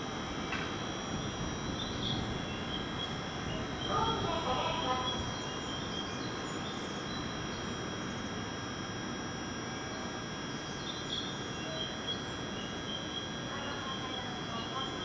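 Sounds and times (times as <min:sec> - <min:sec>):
electric train hum and hiss: 0:00.0 - 0:15.0
high-pitched constant tones: 0:00.0 - 0:15.0.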